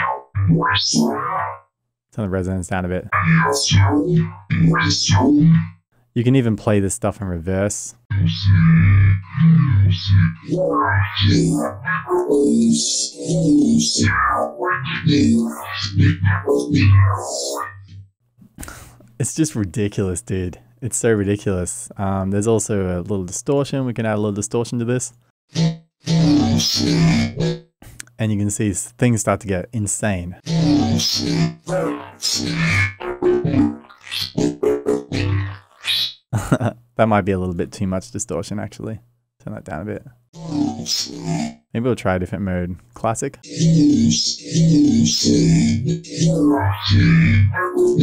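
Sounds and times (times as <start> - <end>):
metallic synth bass notes: 0.0 - 1.6, 3.1 - 5.8, 8.1 - 18.0, 25.6 - 27.5, 30.5 - 36.2, 40.4 - 41.6, 43.4 - 48.0.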